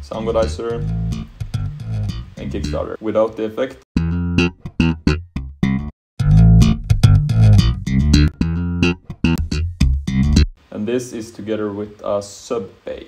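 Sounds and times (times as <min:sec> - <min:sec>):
slap bass playing: 0:00.0 - 0:02.9, 0:04.0 - 0:10.6.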